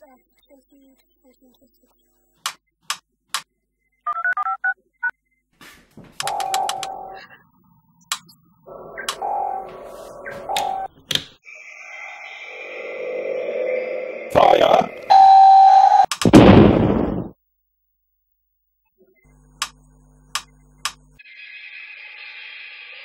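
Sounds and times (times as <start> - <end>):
sharp clicks: 6.2 - 6.9, 8.1 - 8.3, 9.0 - 9.2, 16.1 - 16.6, 19.6 - 21.0
electronic bleeps and whirs: 6.2 - 10.9, 11.5 - 16.1
steady electronic hum: 6.2 - 11.0, 11.6 - 16.0.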